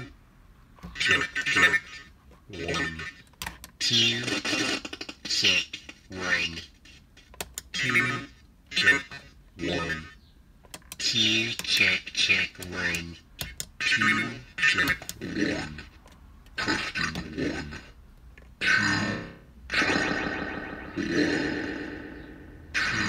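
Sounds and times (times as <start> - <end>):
distorted man's voice through telephone: 0.9 - 3.2, 3.8 - 10.2, 11.0 - 16.0, 16.6 - 18.0.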